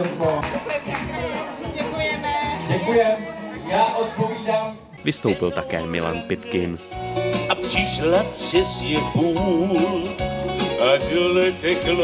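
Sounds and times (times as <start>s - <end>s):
instrumental backing music: 0.0s - 12.0s
man singing into microphone: 3.7s - 12.0s.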